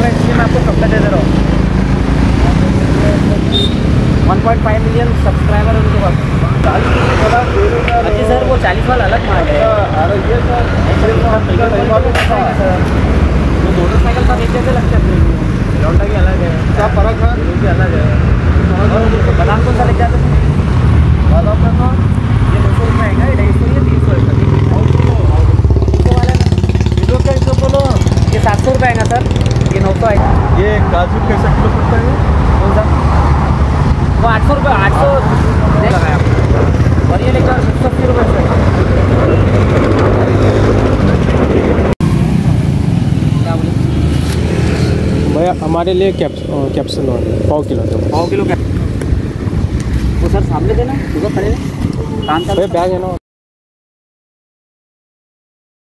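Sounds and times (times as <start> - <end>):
people talking indistinctly: 0.0 - 42.0, 43.1 - 53.2
vehicle engine rumbling: 0.0 - 53.2.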